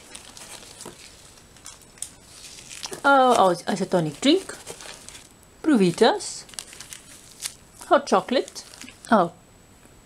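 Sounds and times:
plastic sachets rustling: 0:00.0 - 0:09.2.

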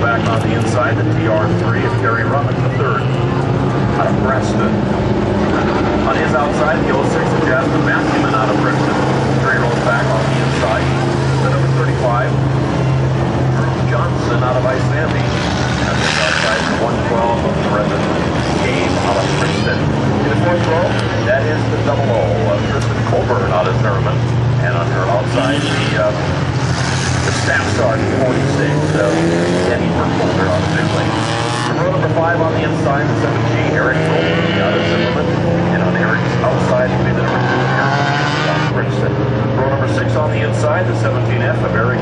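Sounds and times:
announcer over loudspeaker: 0:00.0 - 0:04.8, 0:05.5 - 0:12.4, 0:13.6 - 0:26.3, 0:27.2 - 0:42.0
race car engines droning: 0:00.0 - 0:42.0.

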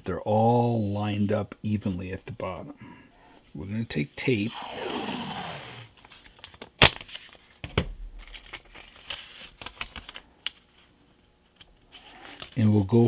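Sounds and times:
tape crinkling: 0:05.9 - 0:10.9.

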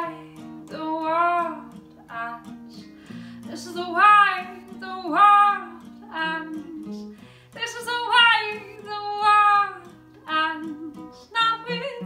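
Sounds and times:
acoustic guitar strumming: 0:00.0 - 0:12.0
woman singing: 0:00.0 - 0:12.0.

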